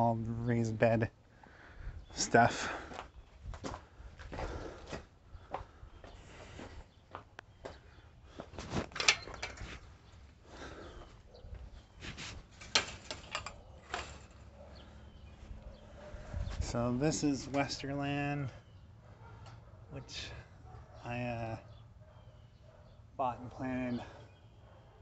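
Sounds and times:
chain-link gate clanking: 0:08.9 - 0:09.7, 0:12.6 - 0:14.5
footsteps: 0:11.0 - 0:14.4.

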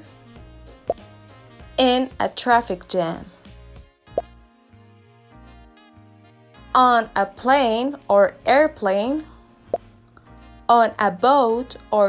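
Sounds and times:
quiet background music: 0:00.0 - 0:12.0
woman speaking: 0:01.8 - 0:03.3, 0:06.8 - 0:09.3, 0:10.7 - 0:12.0.

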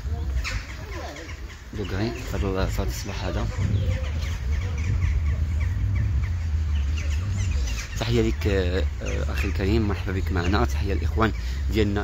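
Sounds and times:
birds chirping: 0:00.0 - 0:12.0
low rumble: 0:02.4 - 0:11.4.

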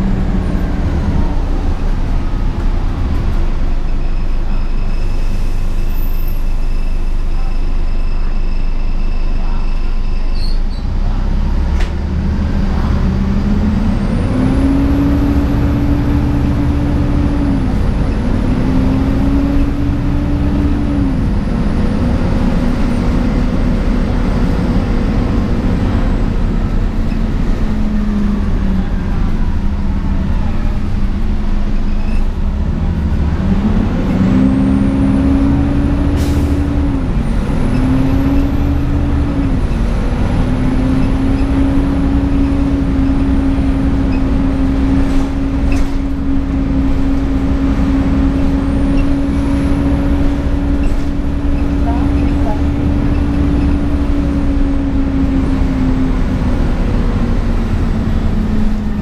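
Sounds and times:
bus engine whine: 0:00.0 - 0:59.0
road rumble: 0:00.0 - 0:59.0.

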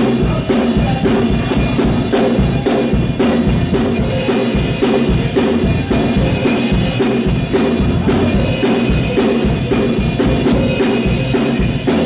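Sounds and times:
drum kit beat: 0:00.0 - 0:12.0
electric bass guitar: 0:00.0 - 0:12.0.

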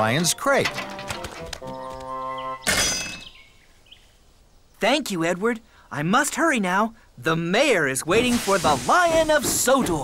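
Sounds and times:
background music: 0:00.0 - 0:03.0
metallic clang with high ring: 0:02.6 - 0:03.4.

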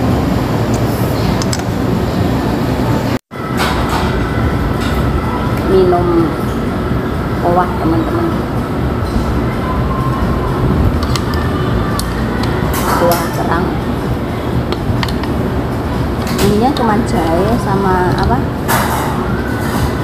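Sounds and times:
low rumble: 0:00.0 - 0:20.0.

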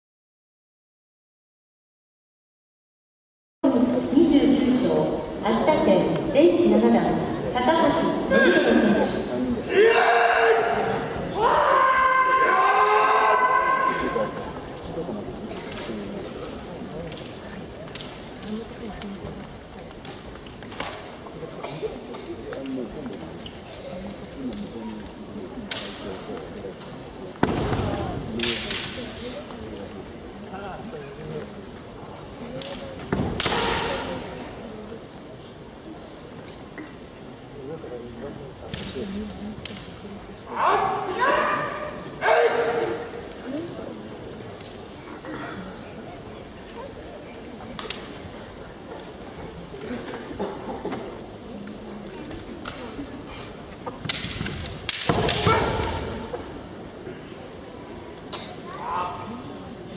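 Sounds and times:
loud shout: 0:09.7 - 0:14.4, 0:40.5 - 0:43.0, 0:55.3 - 0:56.0
bamboo sword strike crack: 0:33.2 - 0:34.1.

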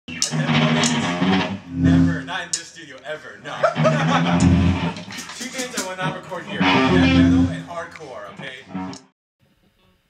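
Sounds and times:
band music with electric guitar: 0:03.6 - 0:09.1.

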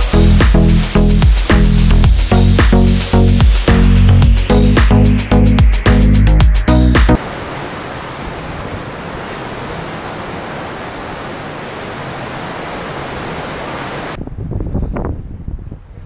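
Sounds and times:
churning wake water: 0:07.0 - 0:14.2
wind rushing: 0:12.4 - 0:16.0
wind buffeting microphone: 0:13.9 - 0:16.0.

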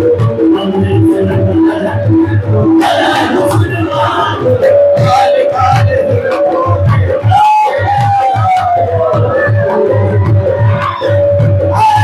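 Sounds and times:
quick even drum beat: 0:00.0 - 0:12.0.

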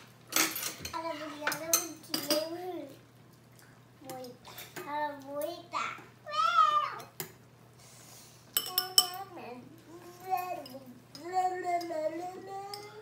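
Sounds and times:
utensils clinking on dishes: 0:00.3 - 0:02.6, 0:08.5 - 0:09.3, 0:10.2 - 0:13.0
small child talking: 0:00.9 - 0:03.0, 0:04.0 - 0:07.2, 0:08.7 - 0:13.0.

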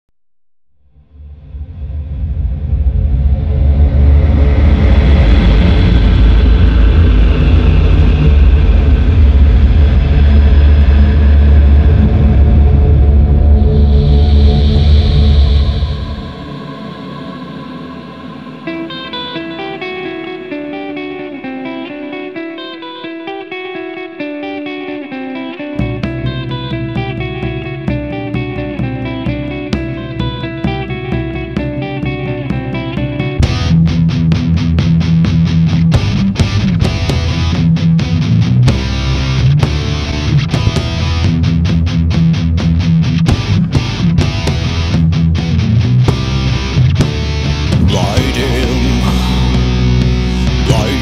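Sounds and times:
low rumbling drone: 0:00.9 - 0:21.5, 0:45.8 - 0:51.0
heavy low end: 0:01.0 - 0:21.5, 0:25.8 - 0:51.0
echoing guitar picking notes: 0:04.5 - 0:51.0.

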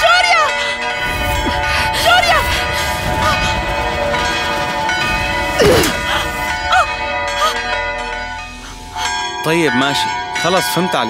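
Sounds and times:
dramatic background music: 0:00.0 - 0:10.9.

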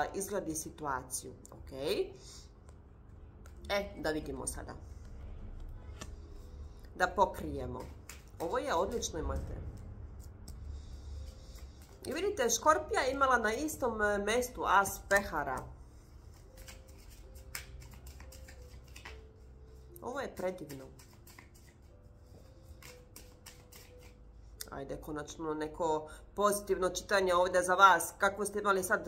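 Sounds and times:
low steady hum: 0:00.0 - 0:29.0
cards being shuffled: 0:07.4 - 0:10.6, 0:11.2 - 0:12.4, 0:16.3 - 0:19.4, 0:20.3 - 0:24.2.

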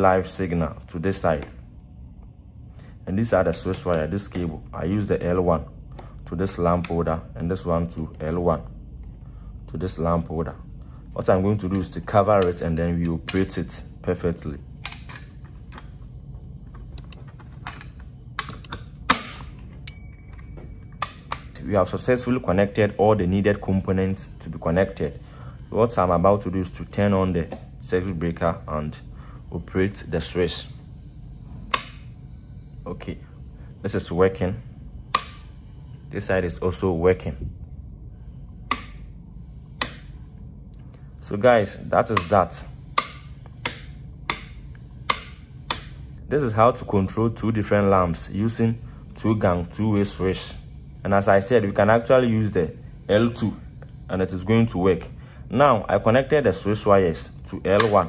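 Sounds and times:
bell-like ding: 0:19.9 - 0:21.1
wall switch clicks: 0:31.7 - 0:32.0, 0:35.1 - 0:35.4, 0:38.7 - 0:39.0, 0:39.8 - 0:40.1, 0:42.1 - 0:42.4, 0:43.0 - 0:46.0, 0:57.8 - 0:58.0.

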